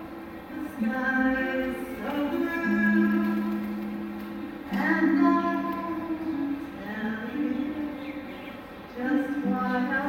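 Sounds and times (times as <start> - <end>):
two women singing: 0.5 - 3.8, 4.7 - 10.0.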